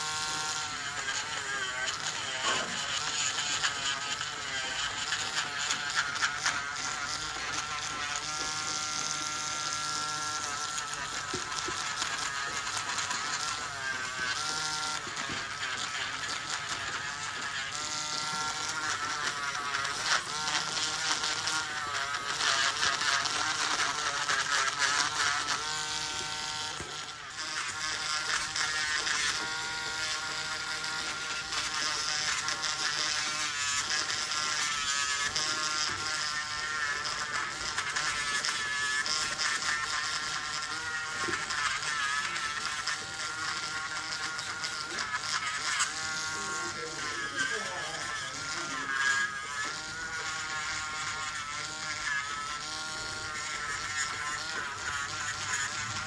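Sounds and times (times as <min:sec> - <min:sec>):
rotary nail drill whining: 0:00.0 - 0:56.0.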